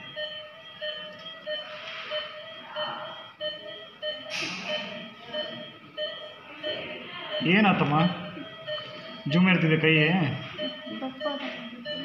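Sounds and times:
medical equipment beeping: 0.0 - 12.0.

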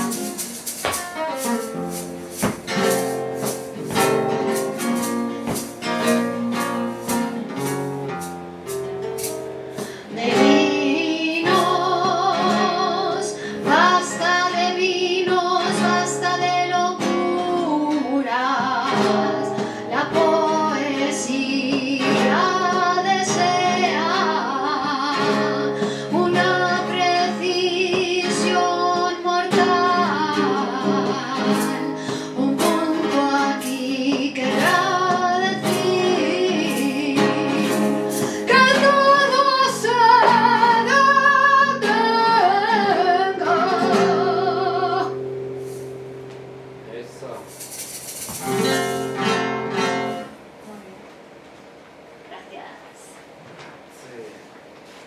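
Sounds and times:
acoustic guitar: 0.0 - 53.9
woman singing with vibrato: 10.0 - 45.2.

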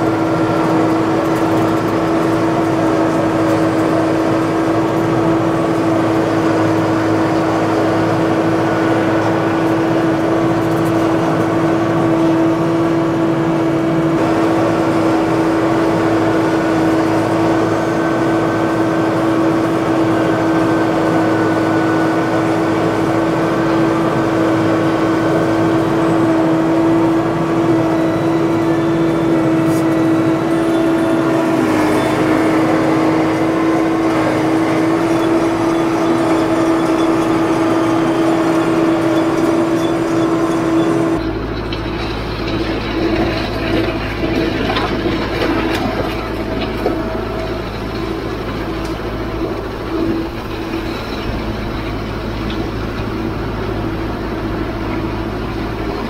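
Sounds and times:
steady whine: 0.0 - 56.0
tractor diesel engine running: 0.0 - 56.0.

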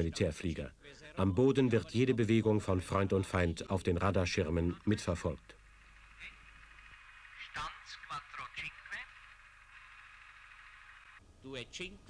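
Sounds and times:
radio hiss: 1.8 - 12.0.

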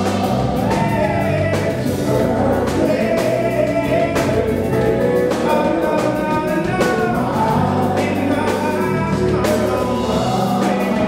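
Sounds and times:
live band playing soul song: 0.0 - 11.0
voices singing together: 0.0 - 11.0.

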